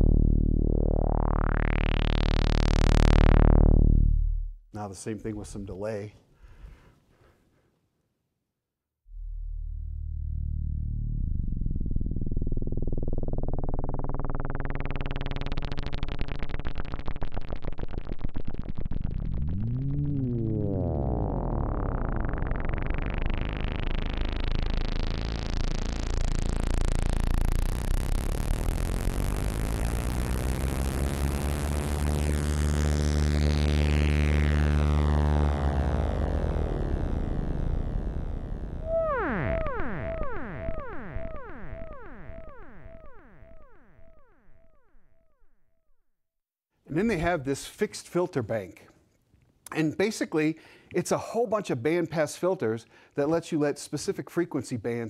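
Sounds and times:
synthesizer filter sweep tone: 0:00.0 - 0:04.7, 0:09.1 - 0:45.9.

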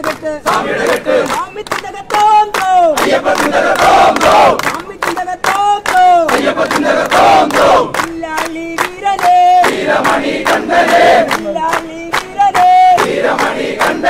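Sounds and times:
crowd chanting: 0:00.0 - 0:01.6, 0:02.7 - 0:04.8, 0:05.9 - 0:08.0, 0:09.3 - 0:14.0
rhythmic hand-clapping: 0:00.0 - 0:14.0.

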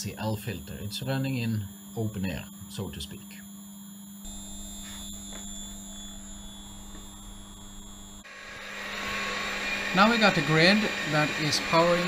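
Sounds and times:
low electrical hum: 0:00.0 - 0:12.0
high-pitched whine: 0:04.2 - 0:12.0
fan noise: 0:04.3 - 0:12.0.

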